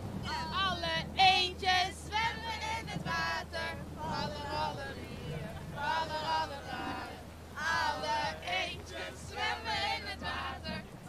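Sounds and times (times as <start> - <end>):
low steady hum: 0.0 - 11.0
woman singing: 0.2 - 10.8.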